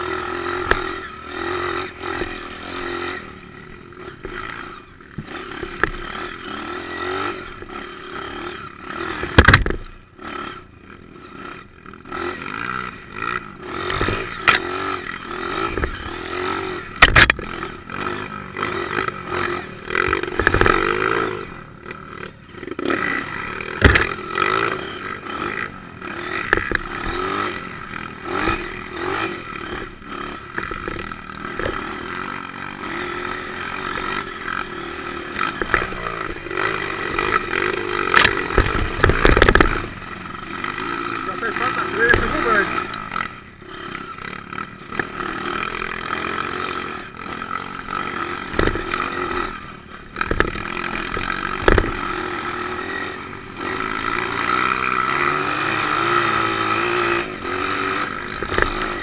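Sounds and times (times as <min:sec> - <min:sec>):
dirt bike engine revving: 0:00.0 - 0:59.0
bike knocks and rattles: 0:05.1 - 0:06.1, 0:09.2 - 0:09.9, 0:13.8 - 0:14.7, 0:16.9 - 0:18.1, 0:20.0 - 0:21.0, 0:23.7 - 0:24.6, 0:26.4 - 0:27.4, 0:28.3 - 0:31.9, 0:35.4 - 0:40.0, 0:48.4 - 0:49.4, 0:50.1 - 0:52.2, 0:58.3 - 0:59.0.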